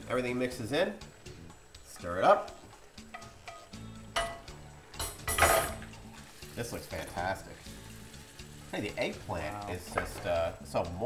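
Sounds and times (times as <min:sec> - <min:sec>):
background music: 0:00.0 - 0:11.0
utensil knocking frying pan: 0:03.0 - 0:06.0.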